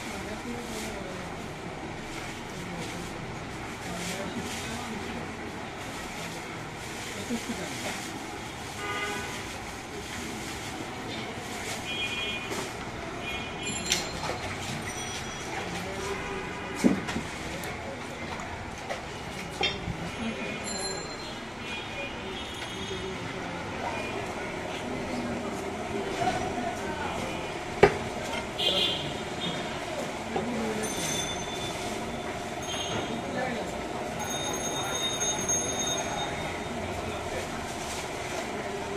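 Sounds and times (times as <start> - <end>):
street traffic: 0.0 - 38.9.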